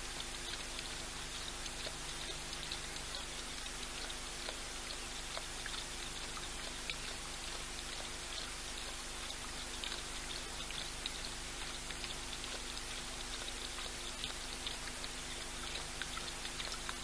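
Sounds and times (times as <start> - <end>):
faint electrical hum: 0.0 - 17.0
lion lapping water: 0.0 - 17.0
steady hiss: 0.0 - 17.0.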